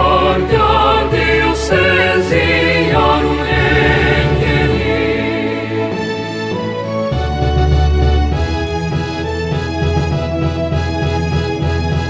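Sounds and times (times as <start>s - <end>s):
choir singing in harmony: 0.0s - 7.0s
instrumental accompaniment: 0.0s - 12.0s.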